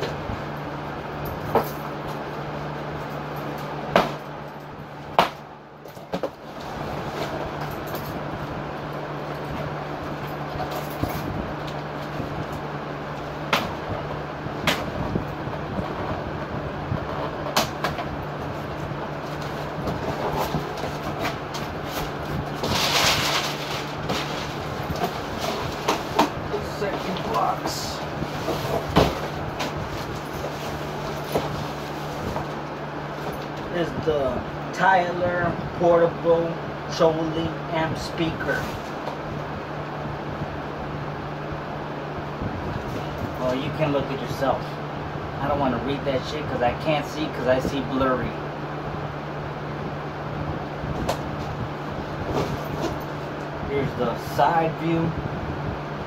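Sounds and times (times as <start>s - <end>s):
steady background hum: 0.0s - 56.0s.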